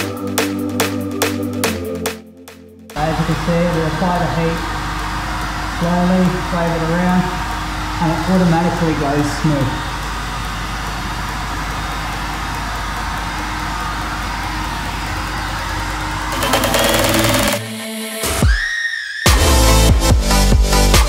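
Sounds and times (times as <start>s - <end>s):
electronic music: 16.1s - 18.6s
heat gun blowing: 16.3s - 17.7s.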